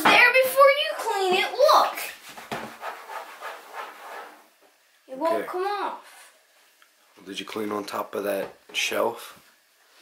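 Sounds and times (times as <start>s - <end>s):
cloth rubbing on countertop: 2.0s - 4.6s.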